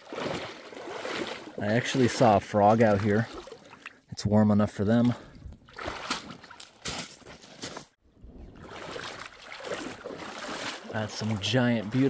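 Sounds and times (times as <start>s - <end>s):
small water splashes: 0.0s - 4.1s, 4.8s - 7.0s, 8.5s - 12.0s
footsteps crunching on pebbles: 6.6s - 8.0s.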